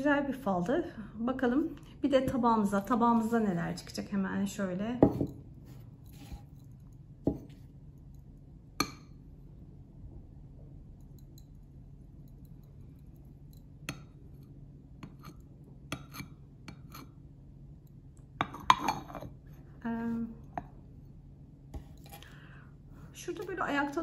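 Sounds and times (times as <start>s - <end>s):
low steady hum: 0.0s - 24.0s
porcelain cup and saucer clinking: 18.4s - 19.4s.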